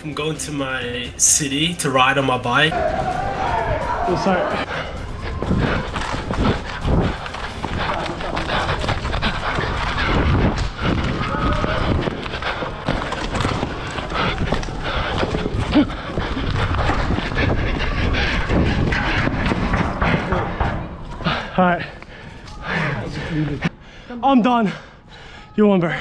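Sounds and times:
indistinct voices: 0:00.0 - 0:26.0
wind rushing over microphone: 0:04.9 - 0:12.9, 0:13.5 - 0:21.0.

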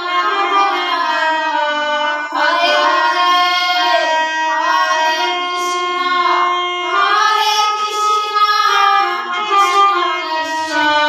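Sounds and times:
harmonium: 0:00.0 - 0:11.0
women singing devotional song: 0:00.0 - 0:11.0.

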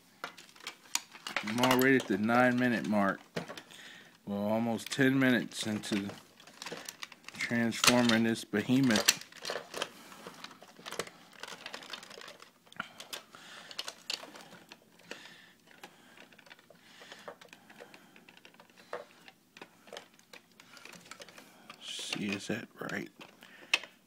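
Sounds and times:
plastic toy parts clicking: 0:00.2 - 0:02.8, 0:08.8 - 0:24.0.

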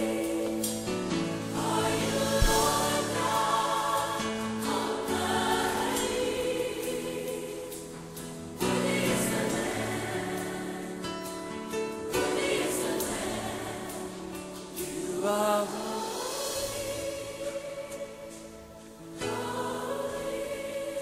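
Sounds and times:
gospel choir singing: 0:00.0 - 0:21.0
low thump: 0:02.3 - 0:03.0.

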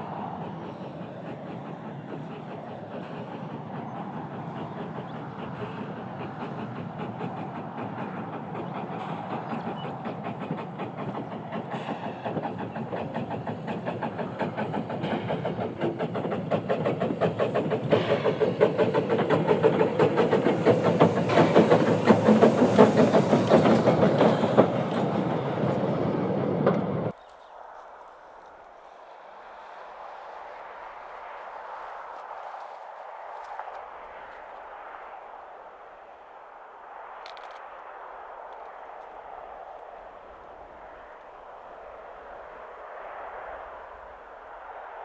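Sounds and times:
steam exhaust beats: 0:00.0 - 0:27.2
wheels clicking over rail joints: 0:00.0 - 0:27.5.

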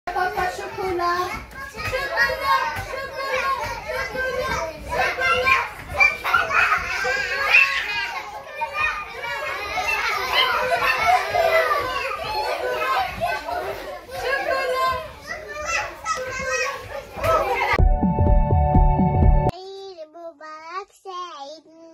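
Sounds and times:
children playing and chattering: 0:00.1 - 0:17.8, 0:19.4 - 0:21.9
music: 0:17.8 - 0:19.5.

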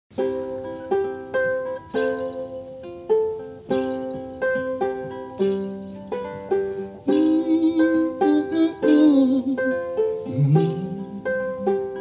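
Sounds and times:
plucked string instrument: 0:00.1 - 0:12.0.

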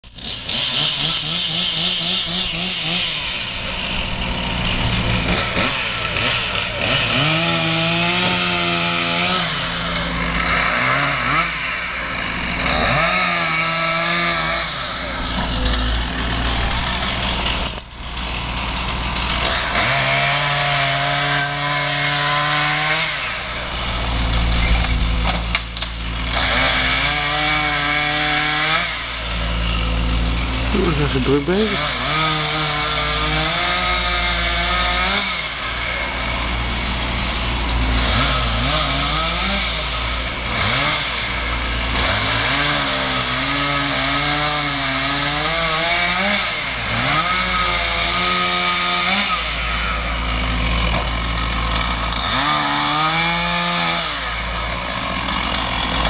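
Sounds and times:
two-stroke chainsaw revving: 0:00.0 - 0:56.0.

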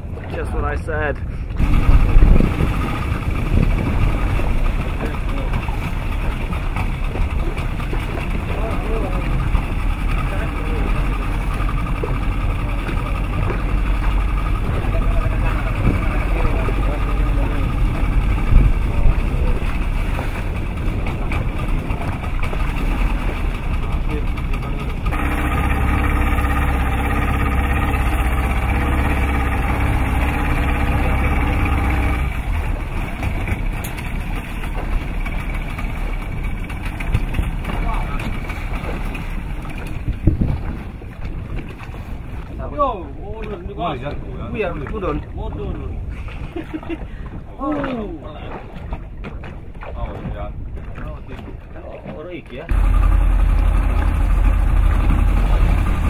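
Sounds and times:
boat engine idling: 0:00.0 - 0:56.0
water noise: 0:00.0 - 0:56.0
wind: 0:00.0 - 0:56.0.

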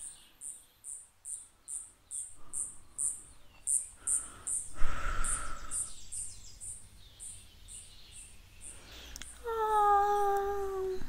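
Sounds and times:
insect chirping: 0:00.0 - 0:09.6.

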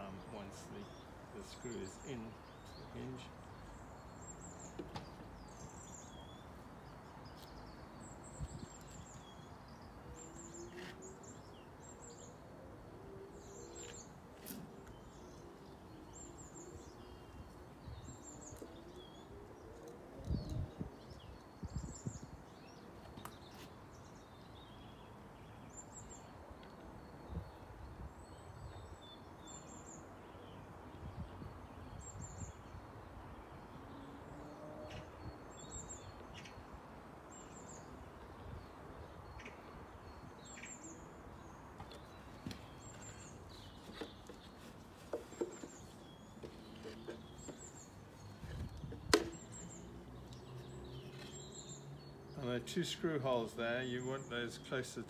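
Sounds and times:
outdoor background noise: 0:00.0 - 0:55.0
songbird chirping: 0:00.0 - 0:55.0
knocks on wooden bird box: 0:49.0 - 0:49.4.

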